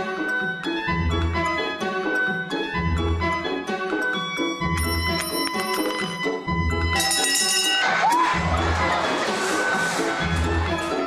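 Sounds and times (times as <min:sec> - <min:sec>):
background music with steady beat: 0:00.0 - 0:11.0
brass bell ringing: 0:04.8 - 0:08.0
cheering: 0:07.6 - 0:11.0.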